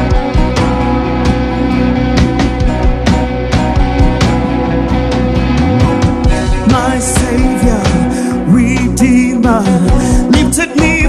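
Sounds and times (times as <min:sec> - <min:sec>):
band playing instrumental: 0:00.0 - 0:11.0.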